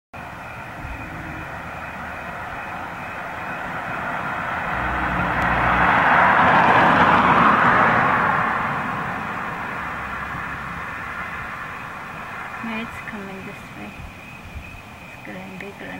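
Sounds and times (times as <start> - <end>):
vehicle passing by: 0.5 - 12.8.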